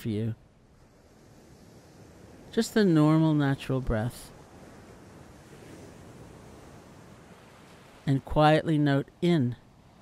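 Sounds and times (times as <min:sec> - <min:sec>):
faint rushing background noise: 0:00.0 - 0:10.0.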